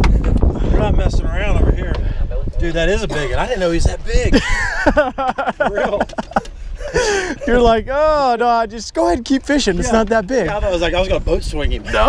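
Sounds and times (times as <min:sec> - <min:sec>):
man laughing: 0:04.2 - 0:07.8.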